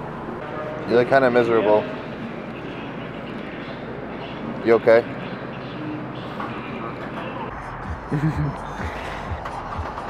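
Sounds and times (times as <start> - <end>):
restaurant background noise: 0.0 - 7.6.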